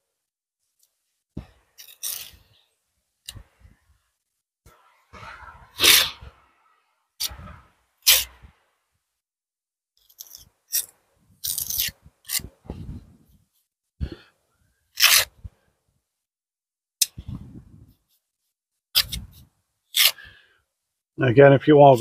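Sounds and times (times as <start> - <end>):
trowel scraping mortar: 1.7 - 2.5, 4.7 - 6.4, 7.2 - 8.4, 10.0 - 12.6, 15.0 - 15.4.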